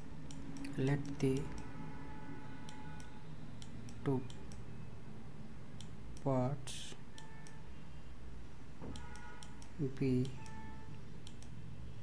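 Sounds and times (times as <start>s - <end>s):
low steady hum: 0.0s - 12.0s
sharp clicks: 11.2s - 11.6s.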